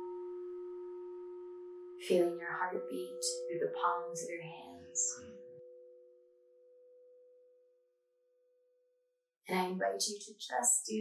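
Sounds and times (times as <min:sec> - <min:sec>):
singing bowl ringing: 0:00.0 - 0:08.9.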